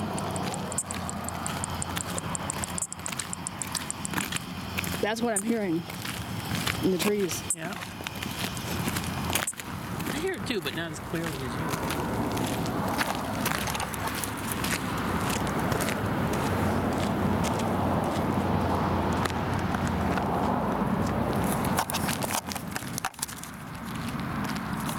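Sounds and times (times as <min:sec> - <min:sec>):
steady rushing noise: 0:00.0 - 0:23.1
footsteps crunching on gravel: 0:00.0 - 0:24.9.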